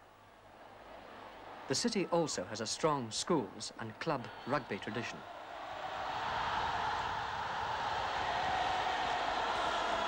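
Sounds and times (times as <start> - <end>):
large crowd noise: 0.0 - 10.0.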